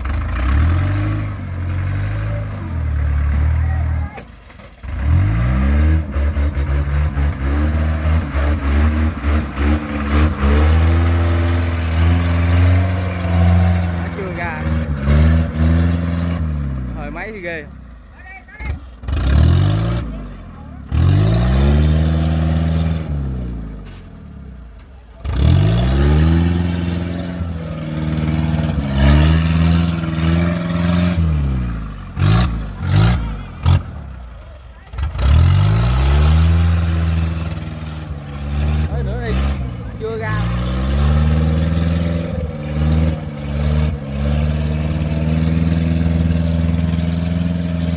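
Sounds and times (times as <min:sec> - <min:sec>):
engine revving in mud: 0:00.0 - 0:17.8, 0:18.7 - 0:24.4, 0:25.2 - 0:47.9.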